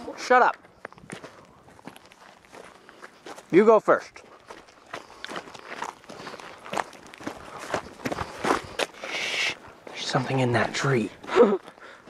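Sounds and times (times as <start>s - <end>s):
footsteps on stony dirt: 0.0s - 12.0s.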